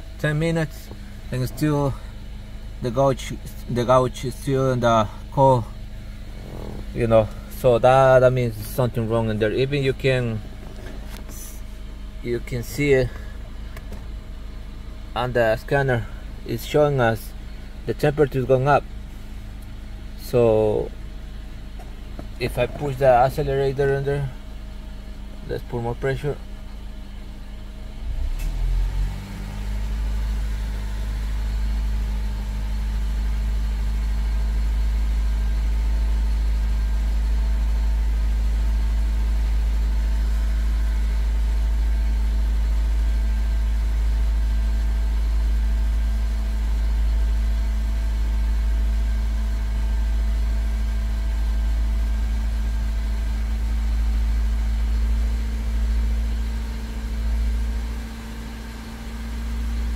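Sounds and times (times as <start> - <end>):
car engine revving: 6.0 - 8.8, 28.0 - 32.1.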